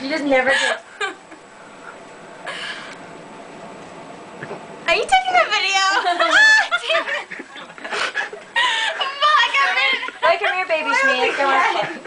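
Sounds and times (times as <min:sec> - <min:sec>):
women laughing: 0:00.4 - 0:01.4, 0:05.8 - 0:12.0.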